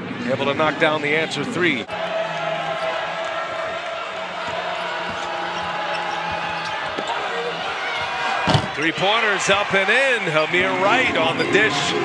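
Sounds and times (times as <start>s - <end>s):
arena background noise: 0.0s - 12.0s.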